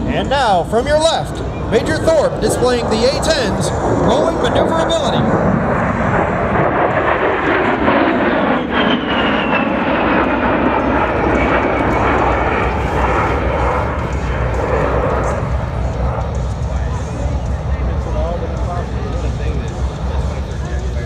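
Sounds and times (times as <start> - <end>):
deep rumble: 0.0 - 21.0
jet aircraft passing by: 0.0 - 21.0.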